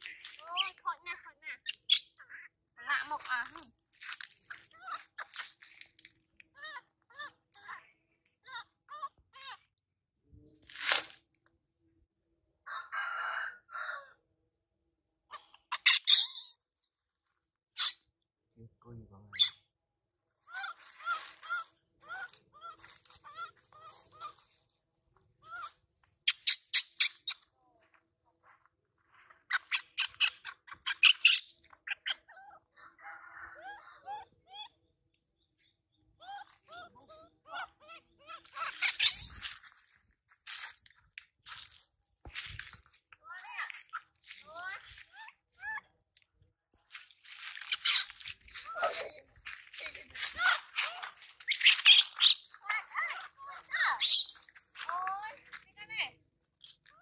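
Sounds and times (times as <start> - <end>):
animal chirping cries: 0.4 - 0.8, 15.3 - 17.0, 17.7 - 18.0, 19.3 - 19.7, 25.4 - 27.4, 29.5 - 34.8, 36.2 - 39.8, 47.6 - 49.1, 50.2 - 55.0.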